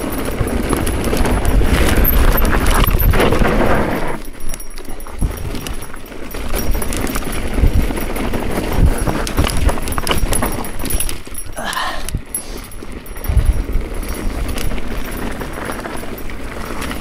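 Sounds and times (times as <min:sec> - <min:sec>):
bike rattling and knocking: 0:00.0 - 0:17.0
bike tyres on rocky dirt: 0:00.0 - 0:17.0.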